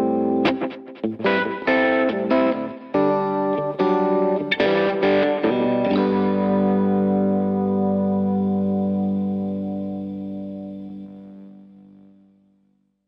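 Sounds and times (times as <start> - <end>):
guitar plucked notes and chord: 0.0 - 12.5.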